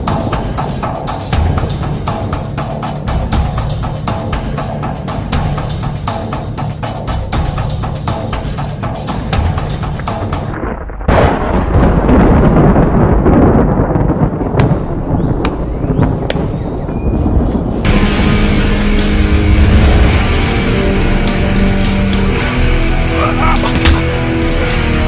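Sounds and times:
dramatic soundtrack music: 0.0 - 16.7, 17.3 - 25.0
loud boom: 10.6 - 17.0.

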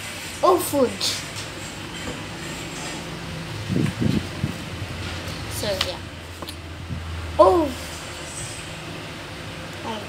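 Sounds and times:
fan humming: 0.0 - 10.0
low bumps: 1.4 - 8.8.

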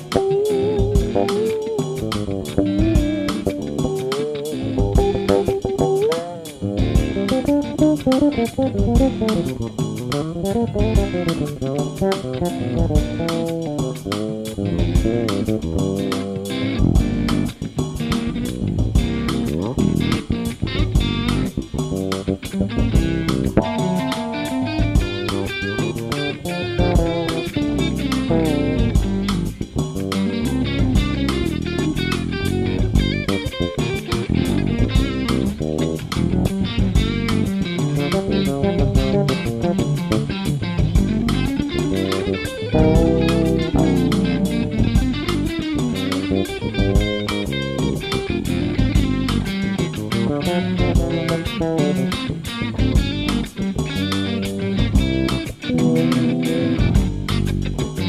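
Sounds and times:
electric bass: 0.0 - 58.0
electric guitar: 0.0 - 58.0
recorded drum track: 0.0 - 58.0.

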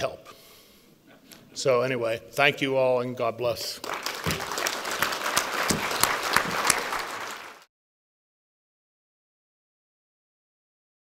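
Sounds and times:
audience applauding: 3.8 - 7.7.

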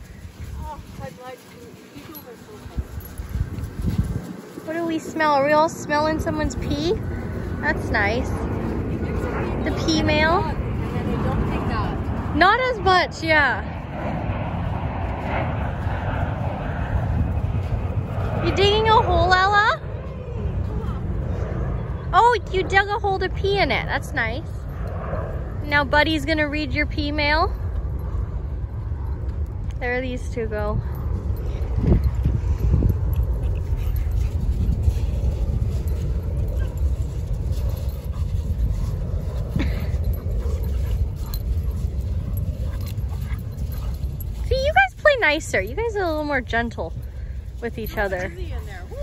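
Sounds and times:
wind buffeting microphone: 0.0 - 49.0.

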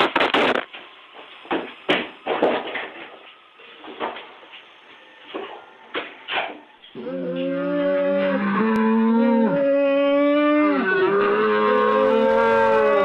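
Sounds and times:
deep drawn-out roar: 7.0 - 13.0.

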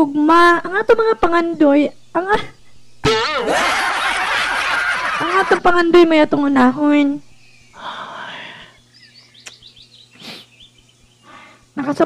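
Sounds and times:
faint bird chirps: 7.2 - 11.6
breathy exhale: 7.8 - 8.8, 11.2 - 11.7
sharp click: 9.4 - 9.6.

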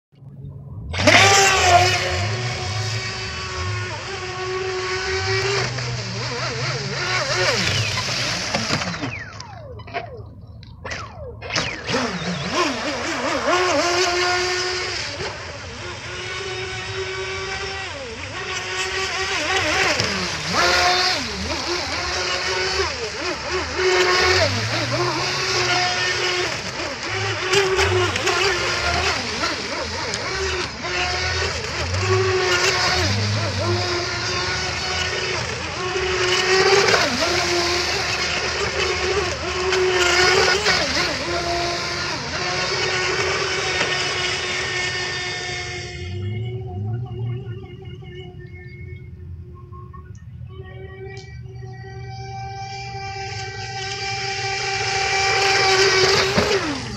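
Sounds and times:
electric motor whining: 0.3 - 56.9.

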